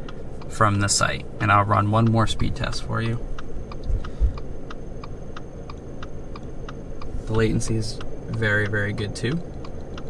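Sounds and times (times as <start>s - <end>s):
light ticking: 0.0s - 10.0s
low car cabin hum: 0.0s - 10.0s.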